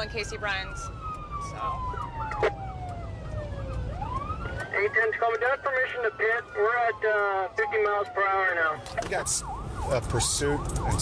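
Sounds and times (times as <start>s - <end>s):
car engine rumble and road noise: 0.0s - 11.0s
fast warbling siren: 0.0s - 11.0s
police siren wailing: 0.0s - 11.0s.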